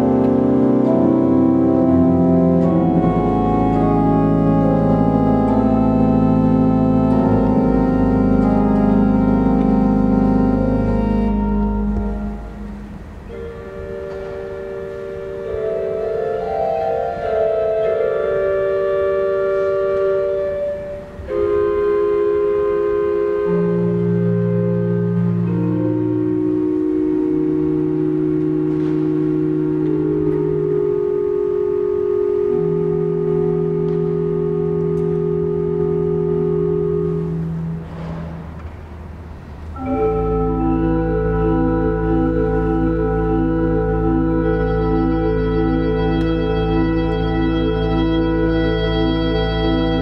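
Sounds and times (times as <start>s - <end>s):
pipe organ chord: 0.0s - 50.0s.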